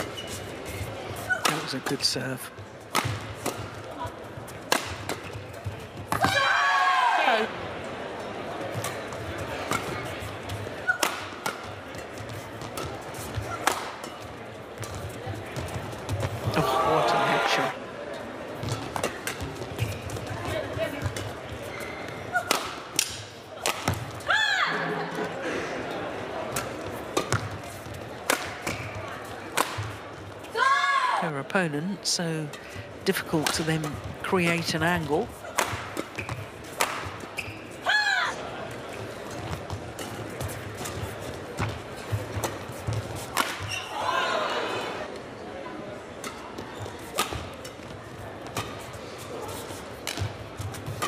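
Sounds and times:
crowd noise in hall: 0.0 - 51.0
rackets hitting shuttlecock: 2.9 - 3.8, 4.6 - 5.4, 10.8 - 15.0, 22.1 - 24.2, 26.5 - 30.0, 33.3 - 37.6, 38.7 - 43.8, 46.2 - 48.9, 50.0 - 51.0
high-pitched shoe squeals: 43.6 - 44.0.

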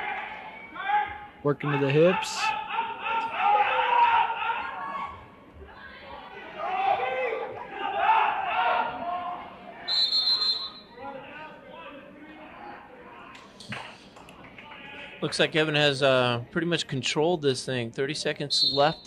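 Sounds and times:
voices in a gym: 0.0 - 19.0
referee's whistle blast: 9.9 - 10.9, 18.5 - 19.0.

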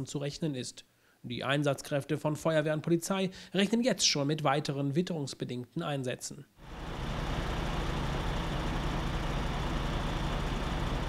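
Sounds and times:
diesel truck engine droning: 6.6 - 11.0.

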